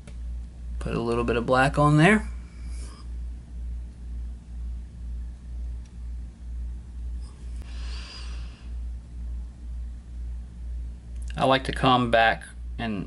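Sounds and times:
low throbbing hum: 2.2s - 11.3s.

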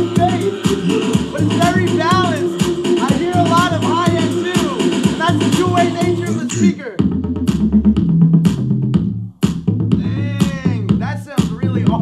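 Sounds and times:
music with drum beat and bass: 0.0s - 12.0s.

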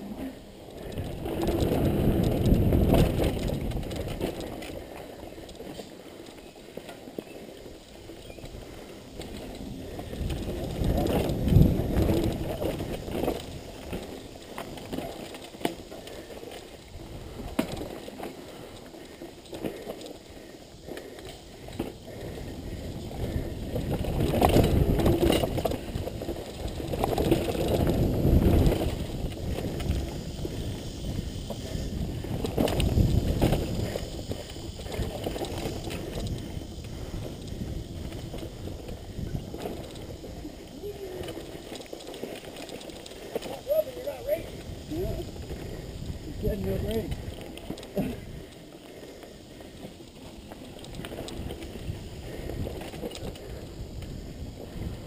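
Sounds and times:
wind rumbling on microphone: 0.0s - 5.8s, 7.7s - 55.0s
bike clunking and rattling: 0.0s - 55.0s
bike tyres on dirt: 0.0s - 55.0s.

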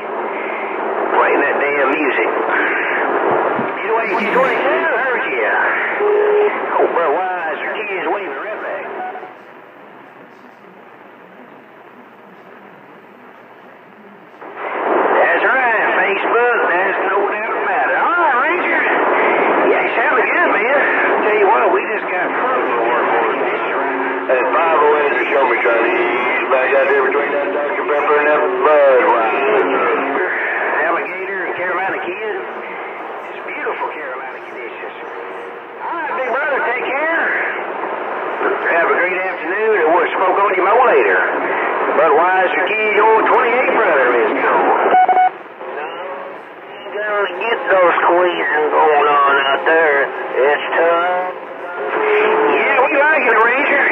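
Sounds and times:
radio static hiss: 0.0s - 53.9s
radio voices talking over each other: 0.0s - 53.9s.

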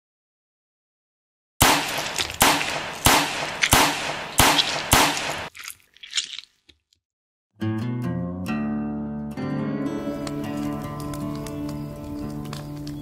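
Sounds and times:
sharp bangs: 1.6s - 5.5s.

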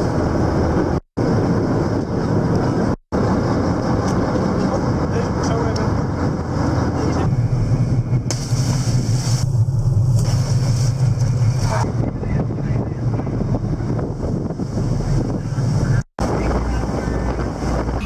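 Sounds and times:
boat engines droning: 0.0s - 18.0s
wind on microphone: 0.0s - 18.0s.

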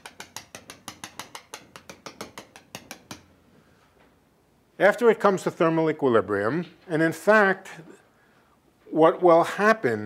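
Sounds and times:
chalk tapping on blackboard: 0.0s - 3.3s.

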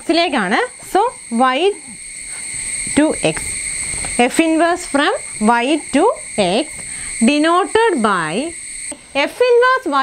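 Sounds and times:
high-pitched background drone: 0.0s - 9.2s.

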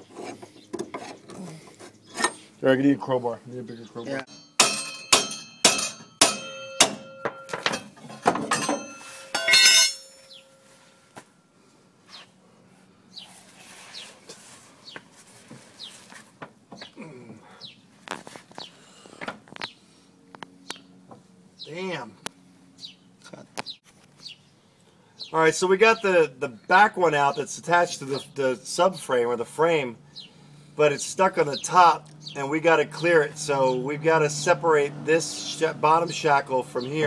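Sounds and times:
crowbar clanking and scraping metal: 0.0s - 2.4s, 4.3s - 10.7s.

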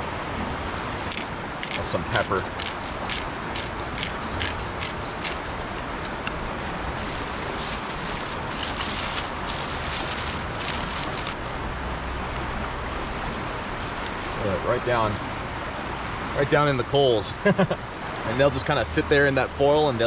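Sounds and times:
steady rushing background noise: 0.0s - 20.0s
pepper grinder clicking: 1.1s - 6.4s
aluminium foil crinkling: 1.1s - 11.4s, 13.2s - 14.4s.

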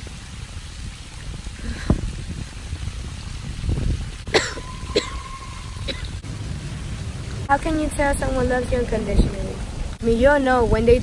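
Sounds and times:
wind rumble on microphone: 0.0s - 11.0s
woman coughing: 4.3s - 5.2s, 5.9s - 6.2s.

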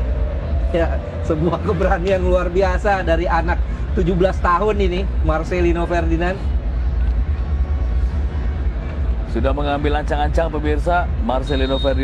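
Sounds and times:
low crowd rumble: 0.0s - 11.4s.

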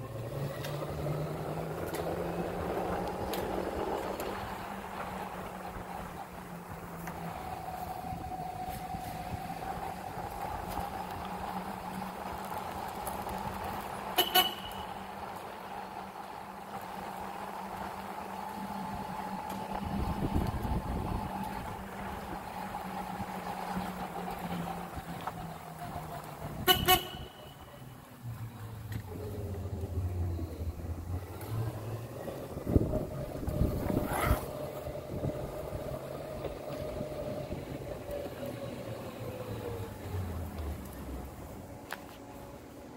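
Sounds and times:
golf cart motor humming: 0.0s - 42.9s
horn toot: 14.1s - 15.0s, 26.6s - 27.7s.

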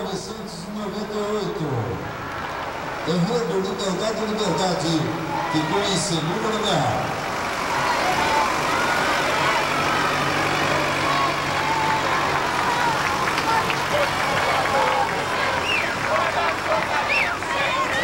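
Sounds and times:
street crowd chatter: 0.0s - 18.0s
truck engine running: 0.0s - 18.0s.

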